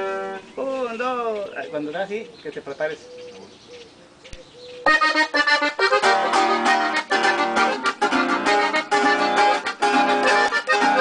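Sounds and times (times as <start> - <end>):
accordion and guitar music: 0.0 - 1.4, 4.4 - 11.0.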